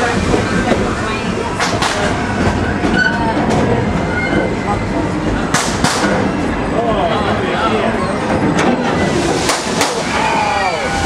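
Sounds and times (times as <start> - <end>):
train wheels rumbling and rattling: 0.0 - 11.0.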